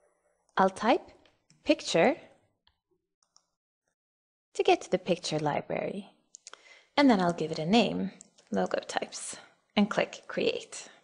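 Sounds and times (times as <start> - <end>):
person speaking: 4.6 - 10.8.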